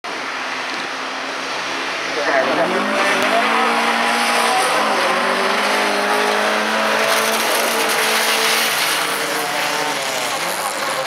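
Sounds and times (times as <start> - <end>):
car engines humming: 0.0 - 11.0.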